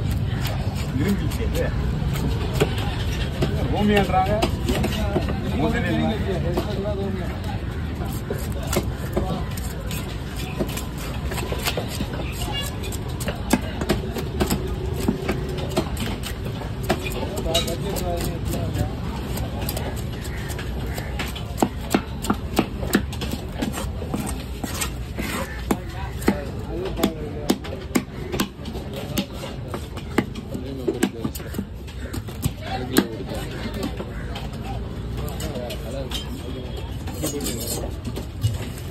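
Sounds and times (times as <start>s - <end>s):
cleaver scraping fish scales: 0.0s - 3.4s, 8.1s - 14.3s, 15.9s - 26.7s, 37.1s - 38.0s.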